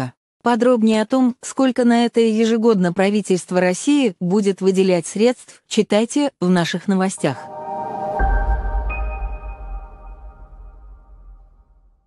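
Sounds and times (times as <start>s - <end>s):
ringing high tones: 7.2s - 11.0s
deep bass boom: 8.1s - 12.0s.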